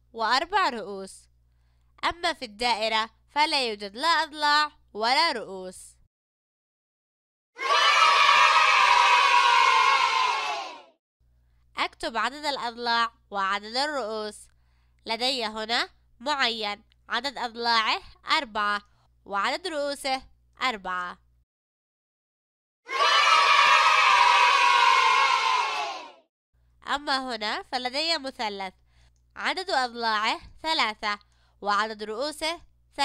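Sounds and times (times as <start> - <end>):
children cheering: 7.6 - 10.9, 22.9 - 26.2.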